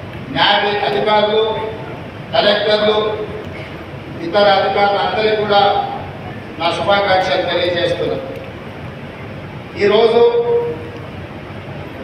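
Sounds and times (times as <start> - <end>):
steady background hiss: 0.0 - 12.0
man's voice over public address: 0.3 - 8.4, 9.7 - 11.0.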